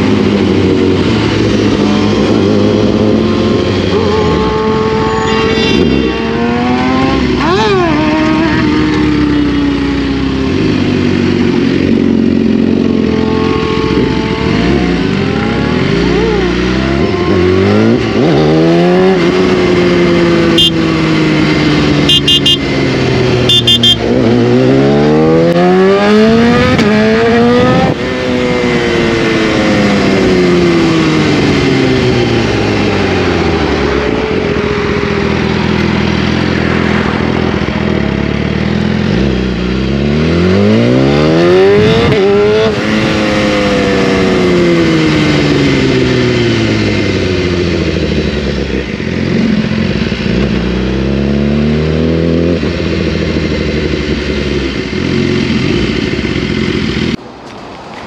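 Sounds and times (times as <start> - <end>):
motorcycle engine revving: 0.0 - 57.2.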